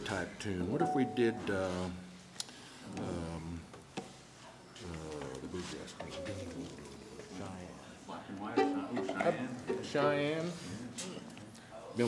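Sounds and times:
men talking: 0.0s - 2.0s, 4.8s - 12.0s
plucked string notes: 8.5s - 10.0s.

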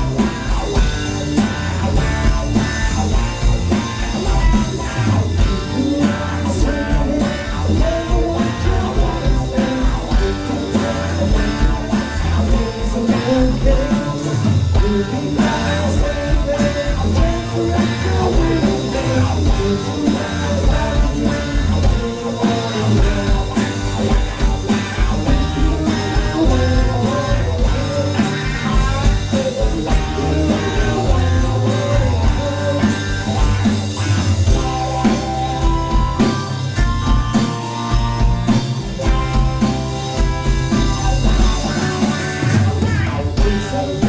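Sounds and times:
live rock band playing: 0.0s - 44.0s
person singing into microphone: 5.4s - 24.2s, 25.2s - 33.6s.

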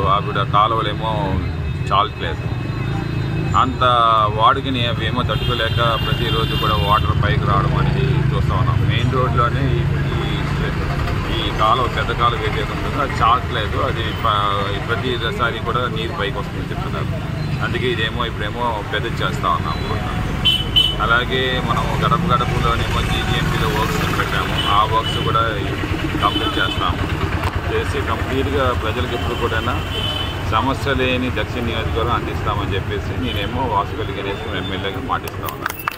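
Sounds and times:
man speaking: 0.0s - 2.5s, 3.5s - 20.3s, 21.0s - 29.9s, 30.5s - 35.8s
street traffic rumble: 0.0s - 35.9s.

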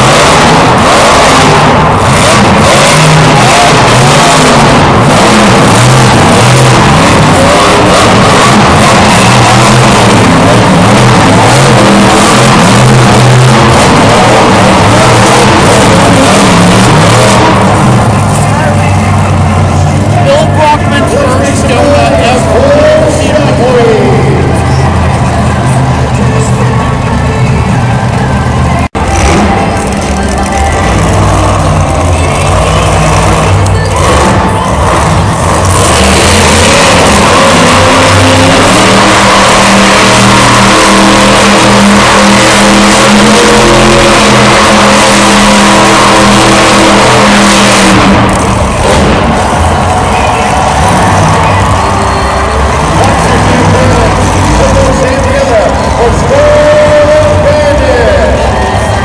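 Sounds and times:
truck engine running loud: 0.0s - 59.0s
voices: 17.0s - 41.4s, 45.8s - 59.0s.

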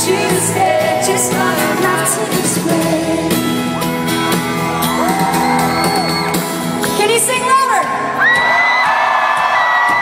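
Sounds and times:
woman singing lead vocal: 0.0s - 3.6s
acoustic guitars: 0.0s - 10.0s
live band playing acoustic song: 0.0s - 10.0s.

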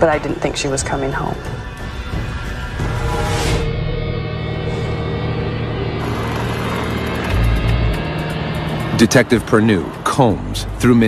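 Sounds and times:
suspenseful underscore music: 0.0s - 11.0s
low rumbling drone: 1.5s - 9.0s.

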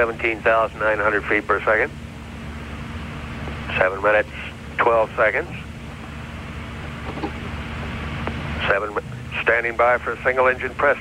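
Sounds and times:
faint steady hum: 0.0s - 11.0s
low rumble and hiss: 0.0s - 11.0s.

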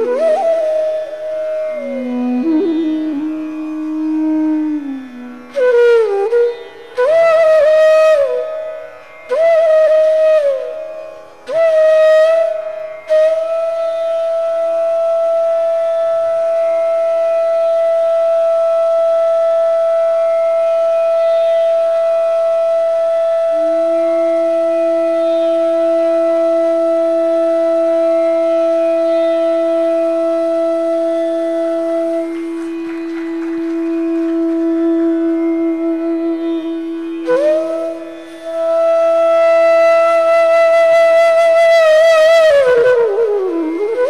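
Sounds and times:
bamboo flute melody: 0.0s - 44.0s
low sustained flute note: 0.0s - 44.0s.

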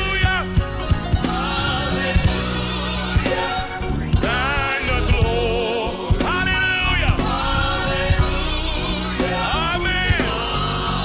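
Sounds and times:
band accompaniment: 0.0s - 11.0s
choir singing gospel: 0.0s - 11.0s
low drum beat: 0.0s - 11.0s.

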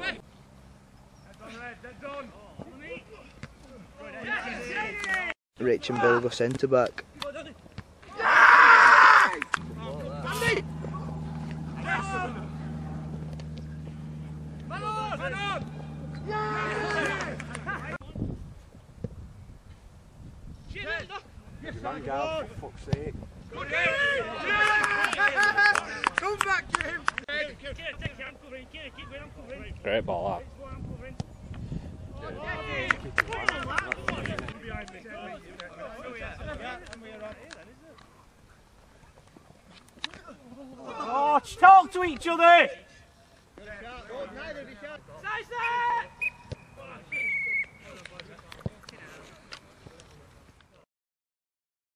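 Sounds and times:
footballers shouting: 8.0s - 18.0s, 23.5s - 26.9s, 32.2s - 36.8s, 40.2s - 42.9s, 43.7s - 48.0s
men shouting: 8.1s - 13.0s, 14.1s - 18.0s
steady low hum: 9.1s - 18.0s.

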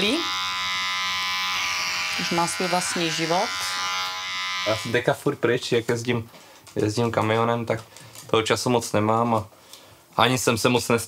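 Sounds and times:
electric hair clippers buzzing: 0.0s - 5.0s.

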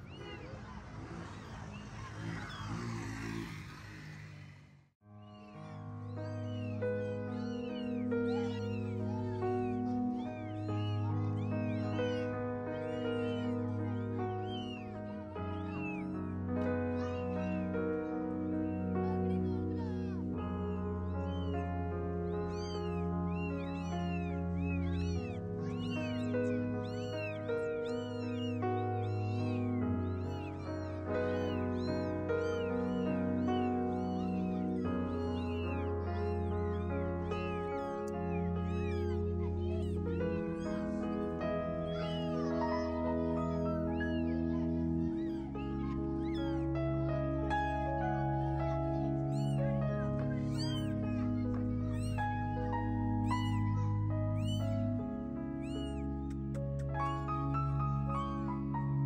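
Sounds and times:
kittens mewing: 0.0s - 4.6s, 5.3s - 58.6s.

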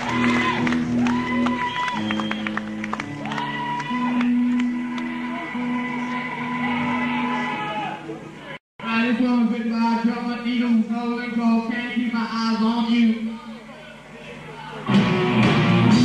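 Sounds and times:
punk rock band playing live: 14.9s - 16.0s.

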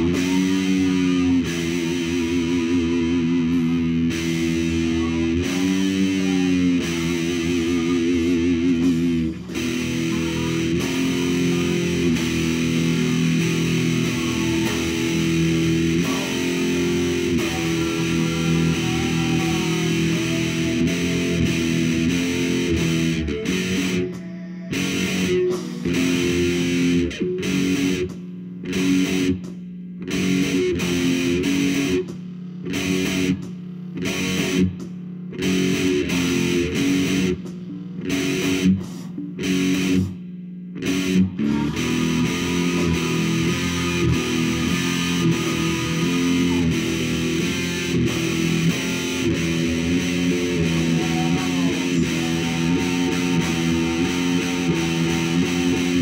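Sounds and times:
distorted electric guitar riff: 0.0s - 56.0s.

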